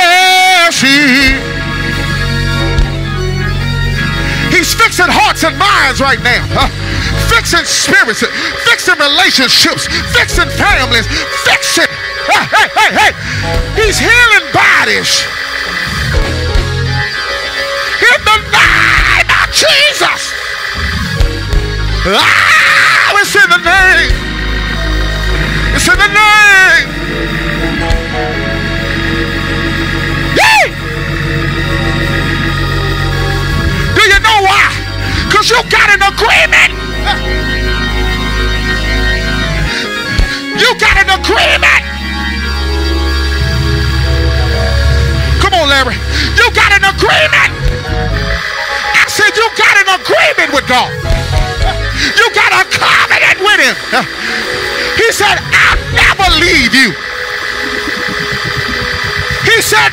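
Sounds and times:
low bass notes: 0.0 - 8.0, 9.7 - 12.2, 13.0 - 22.2, 23.2 - 49.0, 50.7 - 52.2, 53.8 - 59.9
organ holding sustained chords: 0.0 - 59.9.

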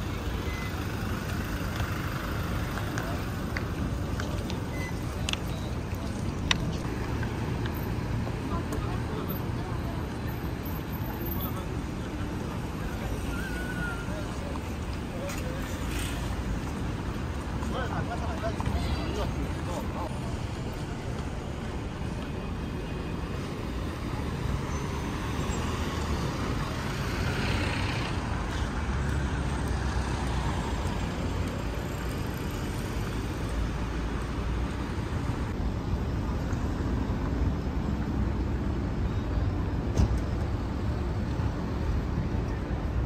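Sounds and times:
cars driving past: 0.0 - 35.6.

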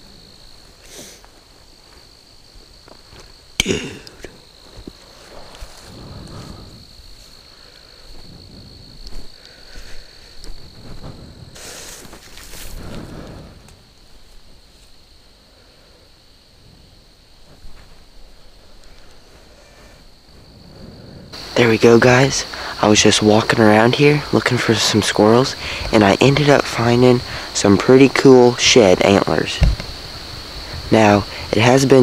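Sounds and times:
high-pitched insect trill: 0.0 - 32.0.

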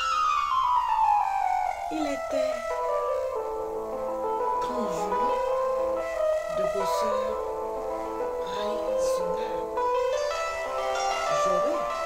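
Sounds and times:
background music: 0.0 - 12.0
piano-like notes: 0.0 - 12.0.

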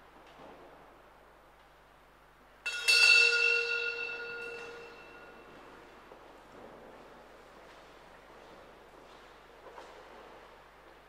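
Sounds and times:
bell ringing: 2.7 - 5.5.

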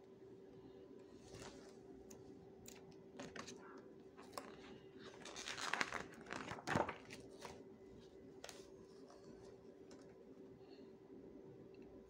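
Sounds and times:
book pages turning: 4.2 - 10.1.

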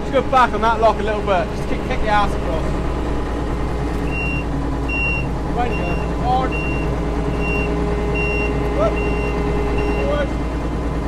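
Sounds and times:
combine harvester engine running: 0.0 - 11.0
reversing alarm beeping: 3.9 - 10.3.

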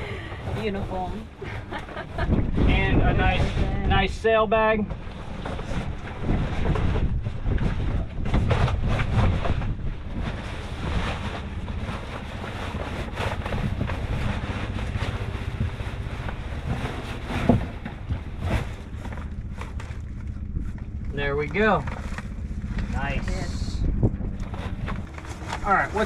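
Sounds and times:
wind buffeting microphone: 0.0 - 26.0
packaging rustling and crinkling: 24.5 - 26.0.

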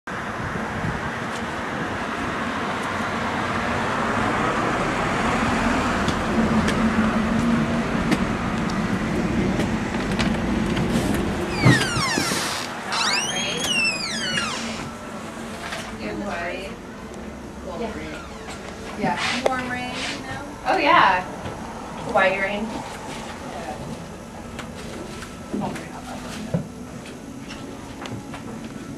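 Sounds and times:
street traffic noise: 0.1 - 28.9
high sliding squeals: 11.5 - 15.6
vehicle passing: 14.0 - 24.9.

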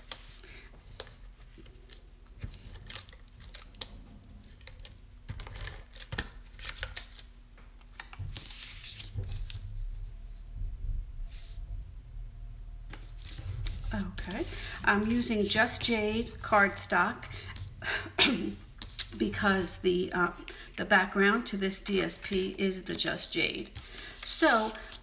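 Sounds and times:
paper scraping: 12.9 - 17.7.

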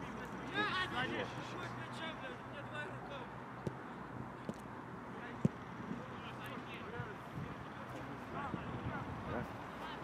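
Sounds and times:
open-air background: 0.0 - 10.0.

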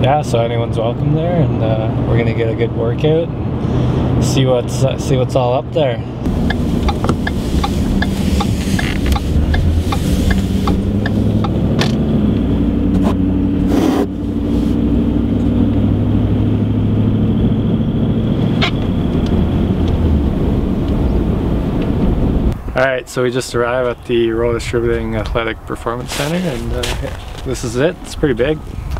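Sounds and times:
truck engine and road hum: 0.0 - 28.9
quick regular ticking: 6.3 - 11.7.

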